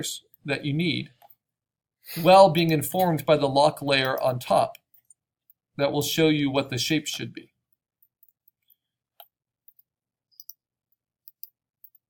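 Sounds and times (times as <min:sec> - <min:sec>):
computer mouse clicks: 0:09.2 - 0:10.6, 0:11.2 - 0:12.0.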